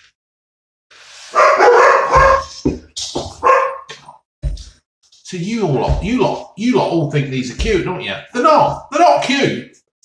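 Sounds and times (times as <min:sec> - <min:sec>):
dogs barking: 0:01.3 - 0:02.6, 0:03.3 - 0:04.0.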